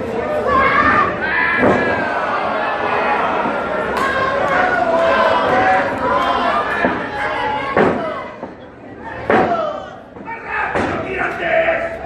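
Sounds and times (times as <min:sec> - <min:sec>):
shouting voices: 0:00.0 - 0:12.0.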